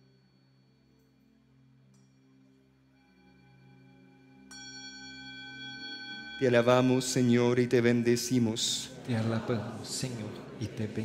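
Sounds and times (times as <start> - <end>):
low sustained musical tone: 0.0 - 9.2.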